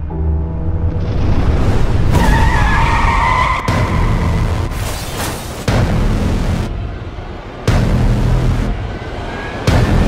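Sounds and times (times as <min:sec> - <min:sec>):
car tyres squealing: 0:02.1 - 0:04.3.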